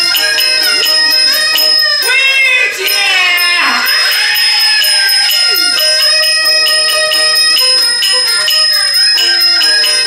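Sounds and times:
high voice singing: 0.0 - 10.0
brass bowl ringing strikes: 2.9 - 10.0.

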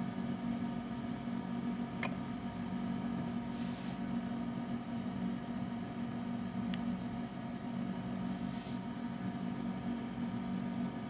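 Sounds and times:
faint fan hiss: 0.0 - 11.0
low electrical hum: 0.0 - 11.0.

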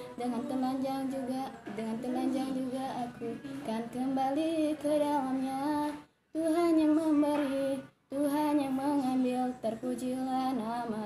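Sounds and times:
woman singing alone: 0.0 - 11.0.

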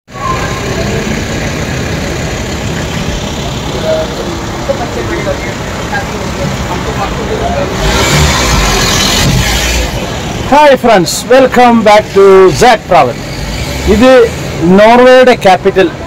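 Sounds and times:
traffic from passing cars: 0.1 - 16.0
voices of people nearby: 0.1 - 16.0.

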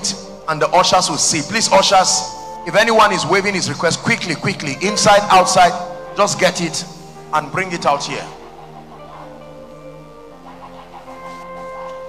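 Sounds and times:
sustained keyboard chords: 0.0 - 12.0.

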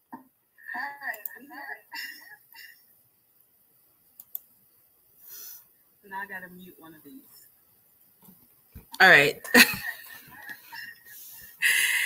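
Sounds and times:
woman laughing: 1.9 - 2.8, 9.4 - 12.0.

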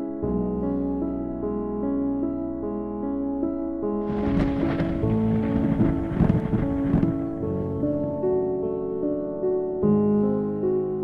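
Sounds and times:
soft piano music: 0.0 - 11.0
thunder sound effect: 4.0 - 8.1.

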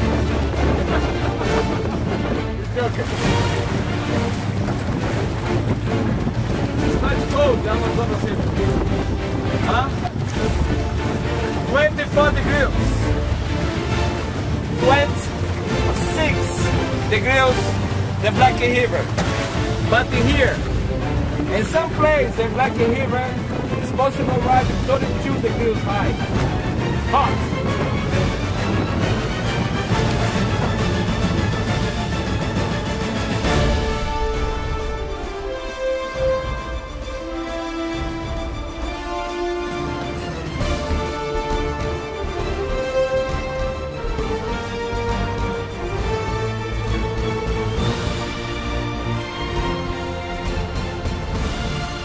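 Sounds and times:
dense background music: 0.0 - 52.0
water splashing along boat hull: 0.0 - 52.0
wind buffeting microphone: 0.0 - 52.0.

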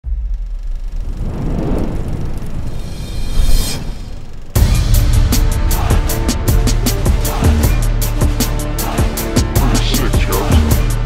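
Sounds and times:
deep rumble: 0.0 - 8.0
swelling rise into bright whoosh: 1.2 - 4.6.

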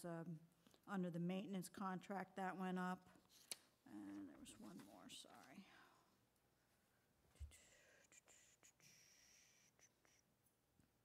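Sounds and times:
faint hiss: 7.3 - 10.6.

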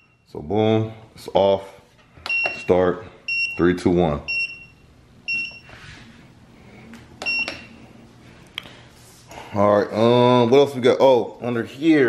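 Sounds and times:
treadmill console beeping: 0.0 - 0.3, 2.2 - 5.8, 7.2 - 7.8.

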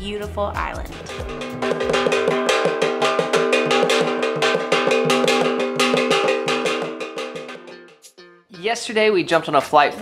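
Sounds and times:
drum beaten fast: 0.0 - 8.2
gongs ringing: 0.9 - 8.4.

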